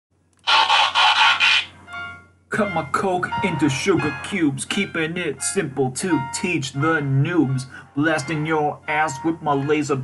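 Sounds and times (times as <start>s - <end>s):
harsh pulsing noise: 0.4s - 1.7s.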